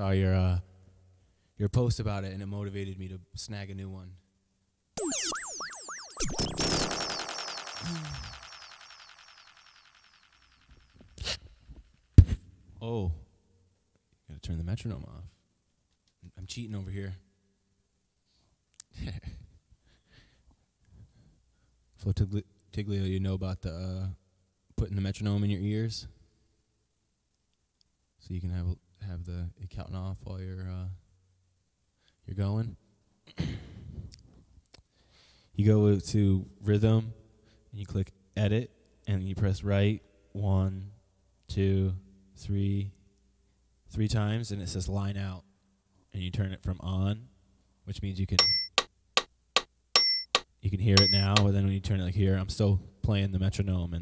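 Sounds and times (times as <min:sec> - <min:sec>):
warbling effected sigh: 0:05.0 - 0:08.7.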